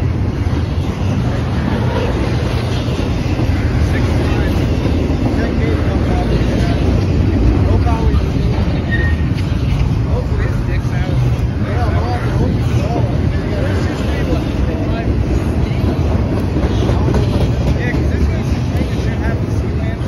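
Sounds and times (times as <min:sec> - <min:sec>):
train wheels rumbling on rails: 0:00.0 - 0:20.0
short high squeaks: 0:08.8 - 0:09.5.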